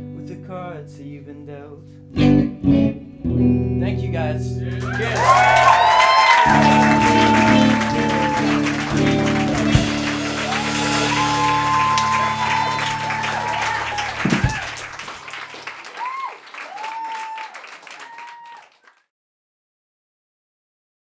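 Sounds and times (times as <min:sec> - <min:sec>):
audience applauding and cheering: 0:04.7 - 0:19.0
low held chord: 0:06.5 - 0:15.0.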